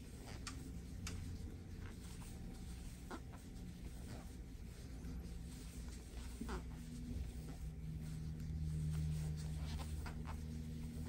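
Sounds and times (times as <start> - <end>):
crochet hook scratching yarn: 0.0 - 11.0
low steady hum: 0.0 - 11.0.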